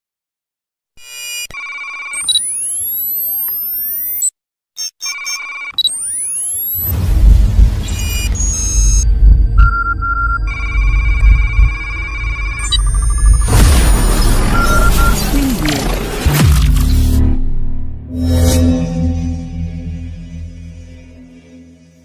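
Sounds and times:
electronic beeps: 0:01.0 - 0:07.0, 0:07.8 - 0:16.5
deep bass rumble: 0:06.8 - 0:21.9.

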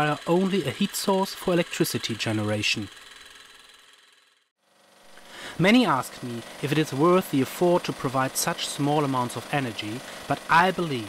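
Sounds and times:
small engine mechanical hum: 0:00.0 - 0:11.0.

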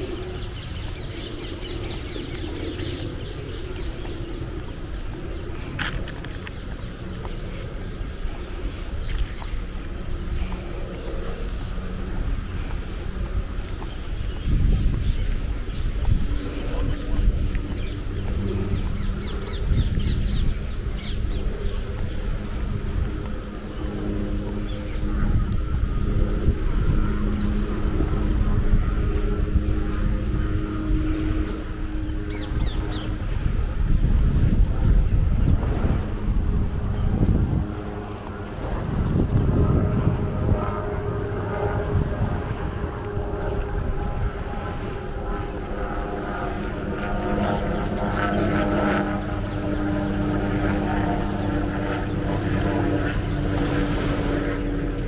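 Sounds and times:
steady engine hum: 0:00.0 - 0:55.0
wind buffeting microphone: 0:00.0 - 0:55.0.

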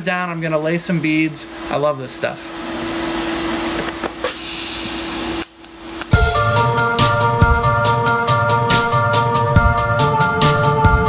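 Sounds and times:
background music with beat: 0:06.1 - 0:11.0.

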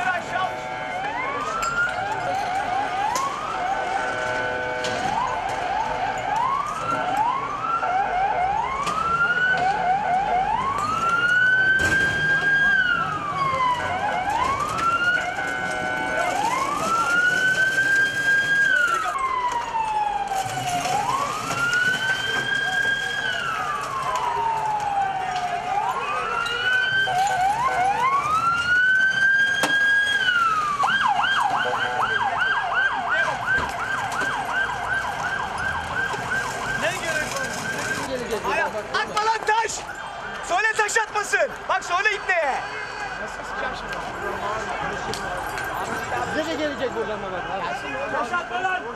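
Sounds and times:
second siren: 0:00.0 - 0:48.4
police siren wailing: 0:00.0 - 0:48.9.

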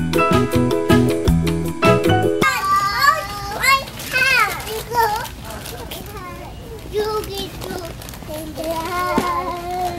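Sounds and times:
music: 0:00.0 - 0:02.4.

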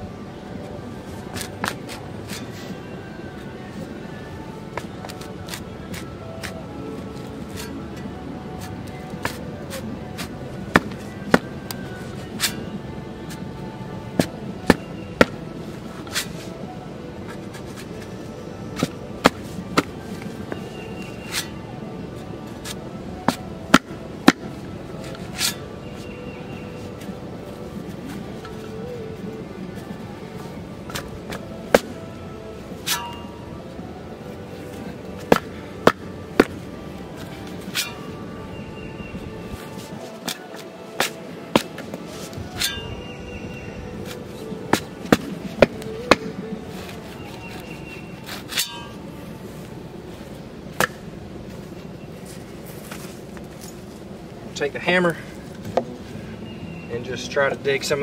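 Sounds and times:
background music: 0:00.0 - 0:58.0.

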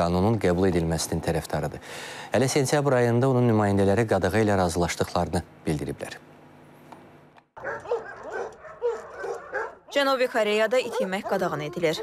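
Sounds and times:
dogs barking and whining: 0:07.6 - 0:10.0, 0:10.7 - 0:12.0.

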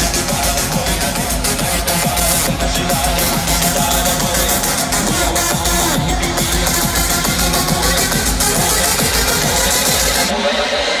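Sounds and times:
loud electronic dance music: 0:00.0 - 0:11.0.

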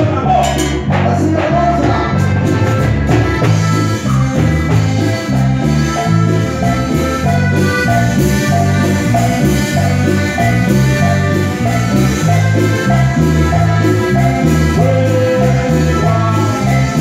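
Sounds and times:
congas: 0:00.0 - 0:17.0
latin band playing dance music: 0:00.0 - 0:17.0.

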